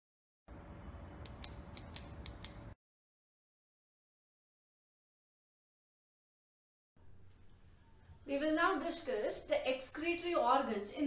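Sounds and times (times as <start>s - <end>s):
sharp irregular clicks: 1.2s - 2.8s.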